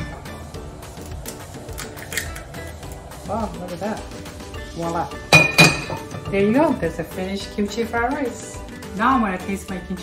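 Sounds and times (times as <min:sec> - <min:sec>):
background music with steady beat: 0:00.0 - 0:10.0
eggs cracking clicks: 0:01.0 - 0:03.1.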